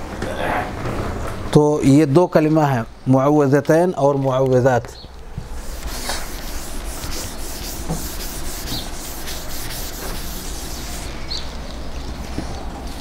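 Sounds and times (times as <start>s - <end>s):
steady low hum: 5.0s - 13.0s
chalk scratching on chalkboard: 5.5s - 11.4s.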